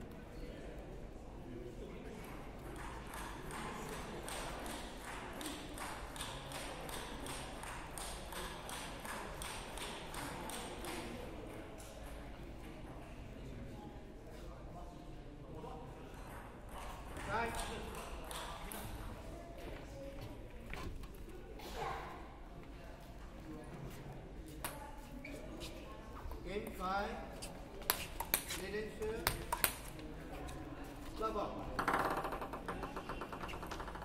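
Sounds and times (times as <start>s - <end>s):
murmur of voices: 0.0s - 34.0s
table tennis balls clicking: 2.3s - 12.2s, 16.2s - 19.1s, 27.8s - 30.0s, 31.6s - 34.0s.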